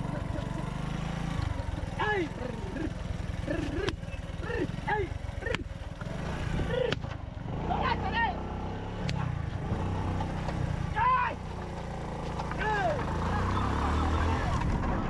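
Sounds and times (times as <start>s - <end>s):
motorcycle engine revving: 0.0s - 15.0s
people shouting: 10.9s - 11.4s, 12.6s - 14.4s.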